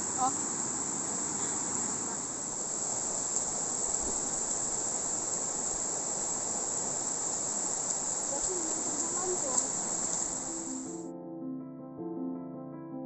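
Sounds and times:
river rushing over rocks: 0:00.0 - 0:11.0
high-pitched insect drone: 0:02.6 - 0:11.0.

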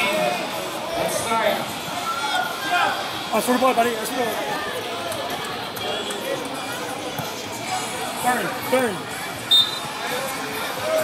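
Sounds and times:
voices at soccer game: 0:00.0 - 0:11.0.

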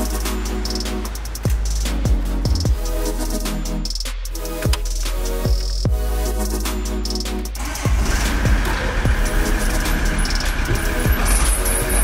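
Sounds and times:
electronic music with kick drum: 0:00.0 - 0:12.0
engine running: 0:00.0 - 0:12.0.

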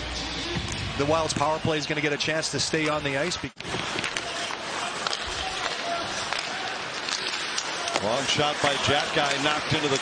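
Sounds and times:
faint clicks of sticks and puck: 0:03.6 - 0:10.0.

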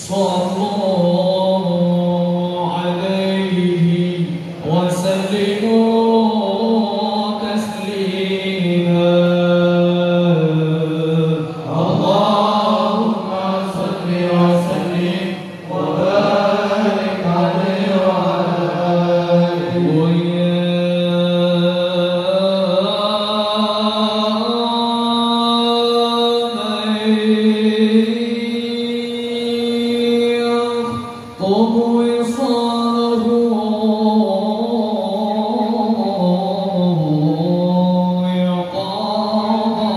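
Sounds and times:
men chanting devotional song: 0:00.0 - 0:39.9.

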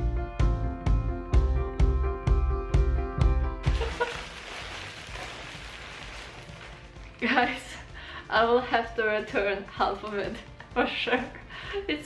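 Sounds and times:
plastic bags crinkling: 0:03.6 - 0:07.8.

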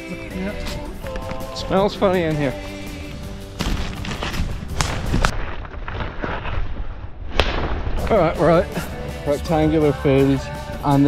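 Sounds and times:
footsteps running through undergrowth: 0:03.3 - 0:06.6.

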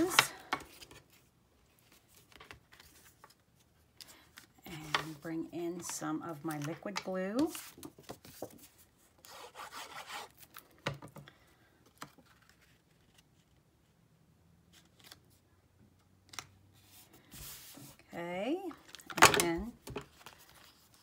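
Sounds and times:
paper rubbing and sliding: 0:16.8 - 0:18.0.

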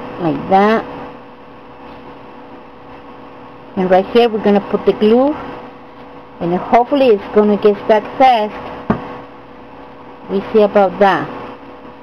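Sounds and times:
faint electrical hum: 0:00.0 - 0:12.0
steady background hiss: 0:00.0 - 0:12.0.

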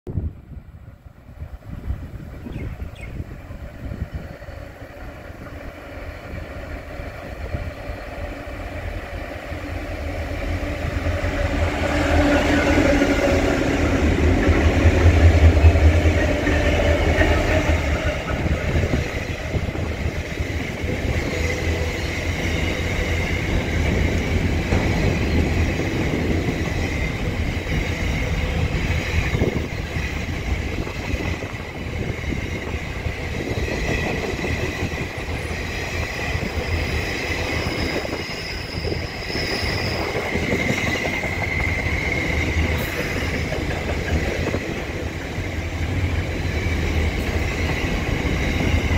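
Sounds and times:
locomotive engines rumbling: 0:01.7 - 0:48.9
high-pitched wheel squeal: 0:36.7 - 0:43.4.

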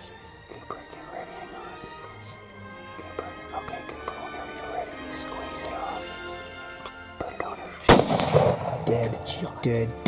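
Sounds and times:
background music: 0:00.0 - 0:10.0
loud rifle shot: 0:07.9 - 0:09.0.

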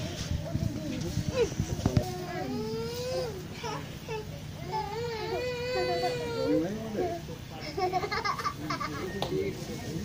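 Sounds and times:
young child crying: 0:01.3 - 0:07.2.

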